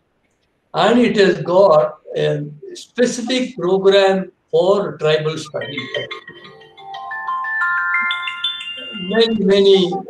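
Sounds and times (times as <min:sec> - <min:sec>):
phone ringtone bell notes: 0:05.7 - 0:10.0.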